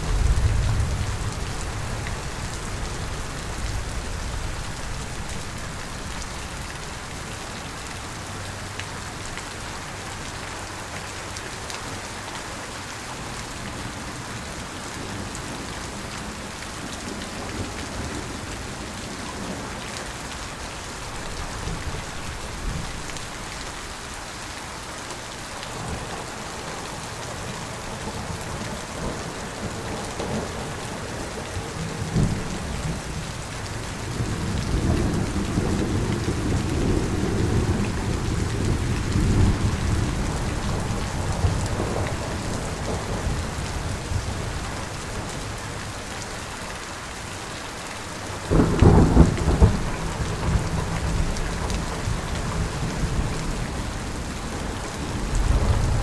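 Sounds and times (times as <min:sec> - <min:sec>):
low rumble of thunder: 0:00.0 - 0:06.3, 0:34.1 - 0:45.6, 0:48.4 - 0:56.0
steady rain: 0:00.0 - 0:56.0
loud crack of thunder: 0:48.5 - 0:51.7.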